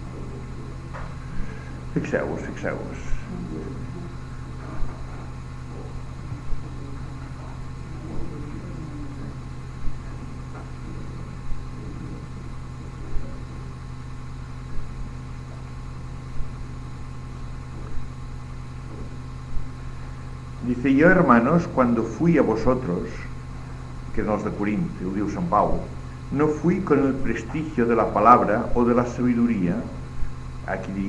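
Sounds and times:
low electrical hum: 0:00.0 - 0:31.0.

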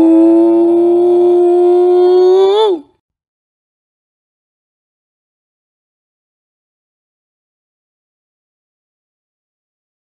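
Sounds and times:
person singing a long ooh: 0:00.0 - 0:02.9.

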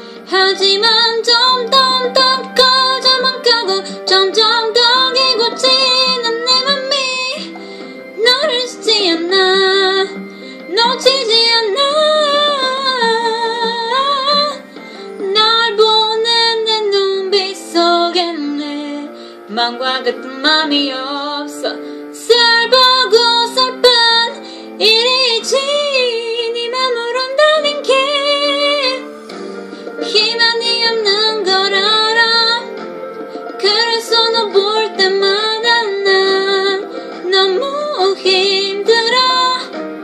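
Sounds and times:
instrumental backing track: 0:00.0 - 0:40.0
woman singing a pop ballad: 0:00.0 - 0:40.0.

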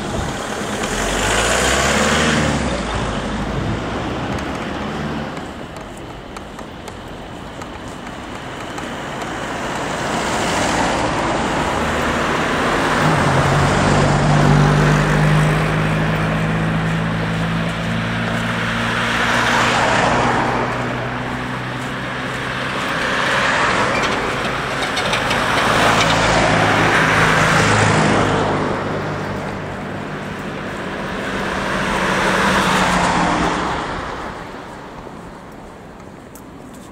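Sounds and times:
cars passing close by: 0:00.0 - 0:36.9.

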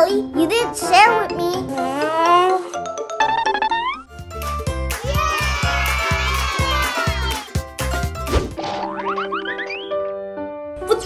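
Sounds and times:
background music: 0:00.0 - 0:11.0
cartoon boing sound effect: 0:03.2 - 0:04.0, 0:08.6 - 0:09.9.

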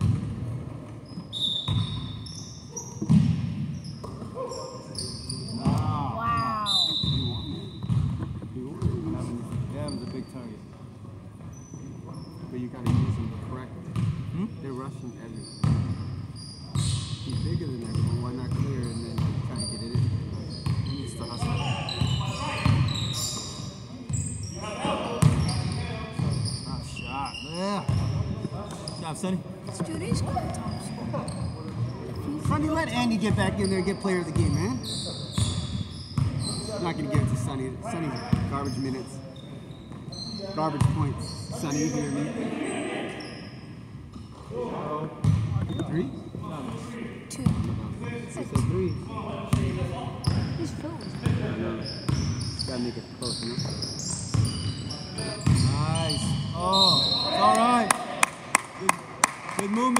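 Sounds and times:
sneaker squeaks: 0:00.0 - 0:10.8, 0:11.4 - 0:13.3, 0:13.9 - 0:44.5, 0:45.2 - 0:46.8, 0:47.4 - 0:57.9
players' voices: 0:40.3 - 0:43.5.

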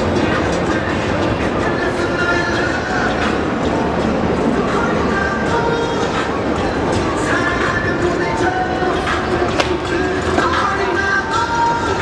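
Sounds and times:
busy city street noise: 0:00.0 - 0:12.0
train rumbling and clattering on rails: 0:00.0 - 0:12.0.

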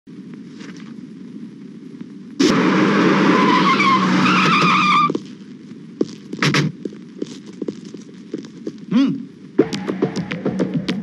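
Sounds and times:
faint low hum: 0:00.1 - 0:11.0
car tyres screeching: 0:02.4 - 0:05.3.

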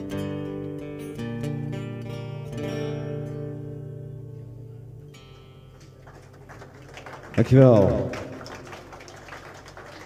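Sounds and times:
light applause: 0:05.7 - 0:10.0.

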